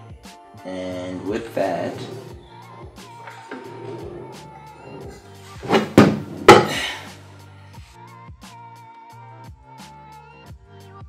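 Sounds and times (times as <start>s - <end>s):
background music: 0.0s - 11.0s
saw set down on tabletop knocks: 3.2s - 7.0s.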